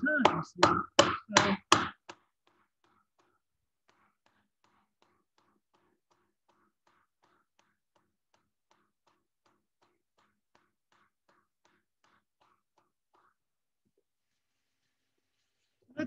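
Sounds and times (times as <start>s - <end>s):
paddle strikes on soft clay: 0.0s - 2.2s.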